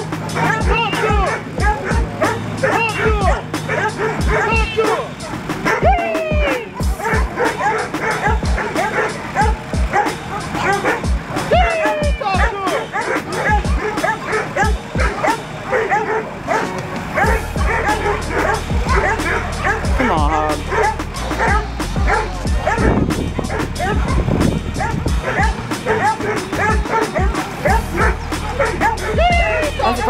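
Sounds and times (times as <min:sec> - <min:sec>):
dogs barking rapidly: 0:00.0 - 0:30.0
music: 0:00.0 - 0:30.0.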